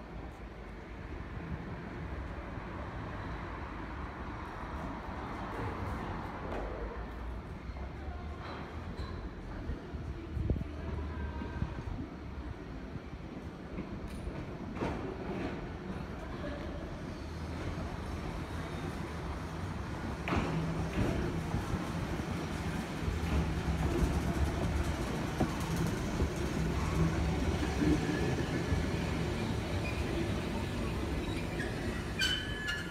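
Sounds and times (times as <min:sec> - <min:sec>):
tram motor and wheel rumble: 0:00.0 - 0:32.9
wheels clicking on track: 0:20.3 - 0:32.9.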